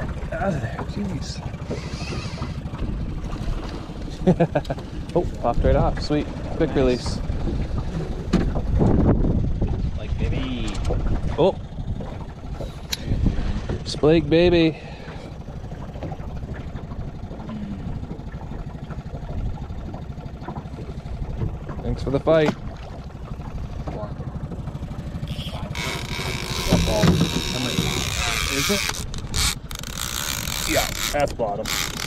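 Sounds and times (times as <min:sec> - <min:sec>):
outboard motor running: 0:00.0 - 0:32.0.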